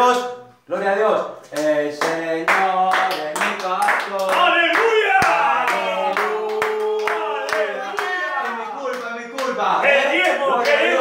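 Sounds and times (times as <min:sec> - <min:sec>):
group clapping in rhythm: 0:01.4 - 0:11.0
voices singing along: 0:01.5 - 0:08.9, 0:09.8 - 0:11.0.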